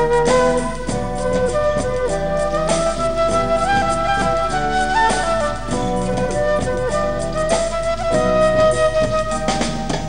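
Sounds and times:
band with percussive beat: 0:00.0 - 0:10.0
flute melody: 0:00.0 - 0:10.0.

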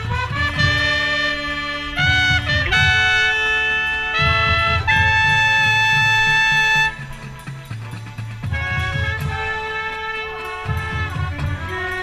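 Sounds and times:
drum beat: 0:00.0 - 0:12.0
marching band brass chords: 0:00.0 - 0:12.0
trumpet playing: 0:00.0 - 0:12.0.

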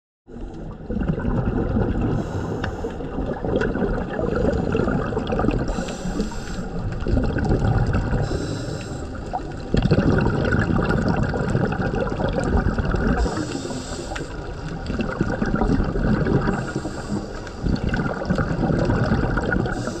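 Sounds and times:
low rumbling water noise: 0:00.3 - 0:20.0
regulator exhaust bubbles gurgling: 0:00.5 - 0:20.0.

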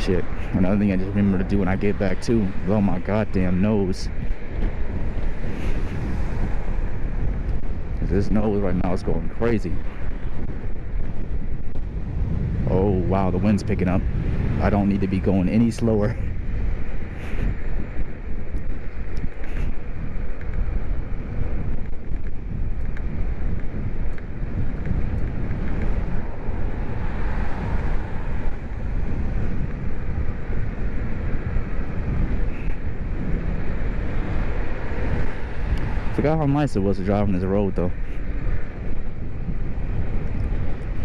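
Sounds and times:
road noise: 0:00.0 - 0:41.0
wind buffeting microphone: 0:00.0 - 0:41.0.

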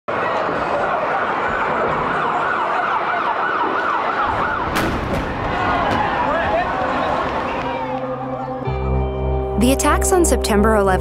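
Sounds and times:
emergency siren yelping: 0:00.1 - 0:09.2
sharp bang: 0:04.6 - 0:06.6.

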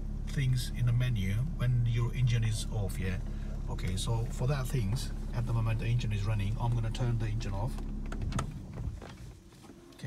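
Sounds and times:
car engine hum switching off: 0:00.0 - 0:10.0.

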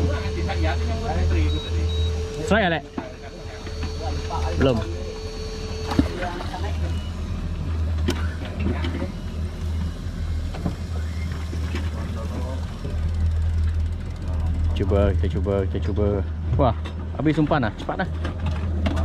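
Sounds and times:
boat at sea: 0:00.0 - 0:19.0
steady whine: 0:00.0 - 0:19.0.

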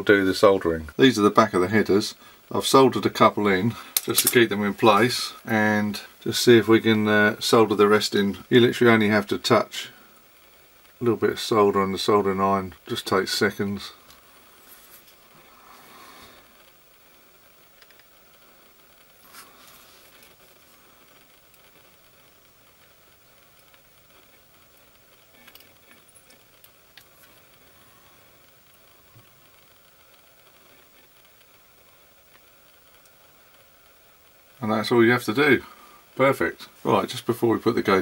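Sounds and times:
room hiss: 0:00.0 - 0:38.0
soldering iron ticks and taps: 0:17.8 - 0:18.1, 0:21.4 - 0:27.6, 0:32.3 - 0:33.2.

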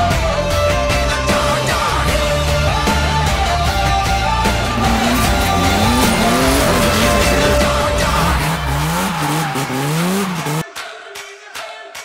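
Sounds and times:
loud background music: 0:00.0 - 0:12.0
car engine revving: 0:01.9 - 0:10.6.

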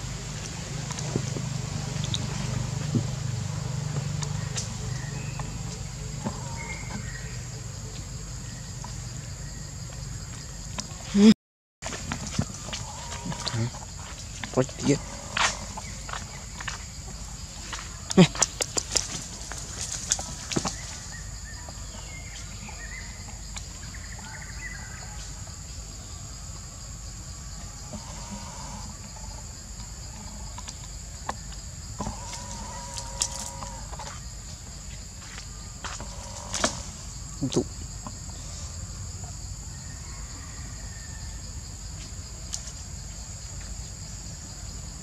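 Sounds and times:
forest insects droning: 0:00.0 - 0:45.0
rustles: 0:11.8 - 0:24.3, 0:27.4 - 0:40.0.

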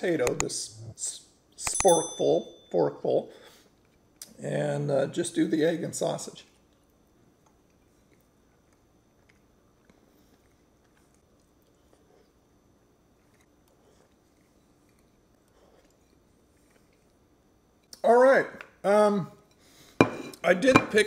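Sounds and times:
faint steady hum: 0:00.0 - 0:21.0
soft chewing: 0:06.4 - 0:18.0.

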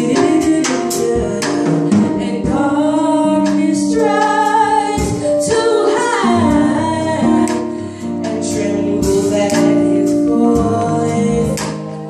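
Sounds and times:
women's gospel group singing: 0:00.0 - 0:12.0.

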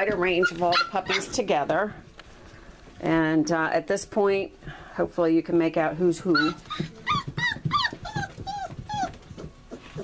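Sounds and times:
puppies whimpering: 0:06.3 - 0:10.0.

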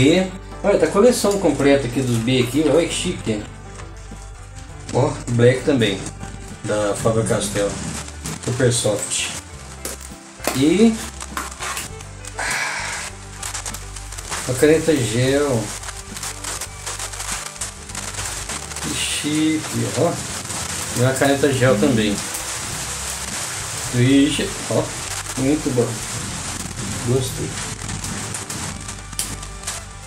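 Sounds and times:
rain falling on roof: 0:00.0 - 0:30.0.

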